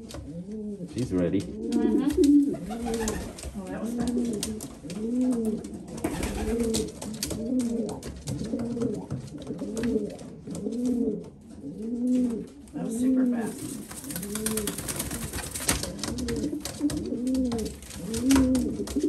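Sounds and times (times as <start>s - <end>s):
pigeon cooing: 0.0s - 19.0s.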